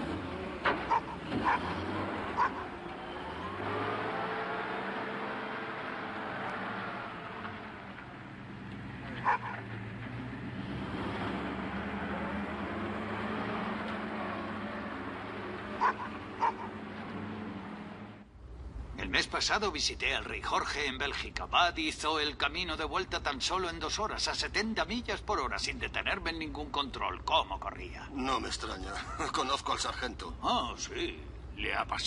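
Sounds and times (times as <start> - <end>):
car engine running: 0.0 - 18.3.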